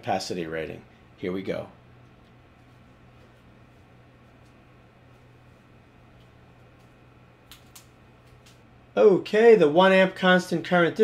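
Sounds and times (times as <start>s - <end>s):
faint steady low hum: 0.0s - 11.0s.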